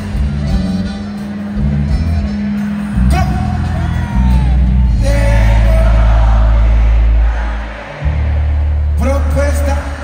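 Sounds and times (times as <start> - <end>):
live band music: 0.0 - 6.3
deep bass notes: 0.0 - 10.0.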